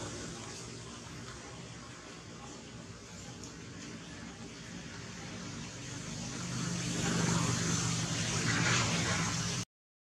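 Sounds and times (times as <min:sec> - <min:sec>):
road noise: 0:00.0 - 0:09.6
vehicle engine hum: 0:05.1 - 0:09.6.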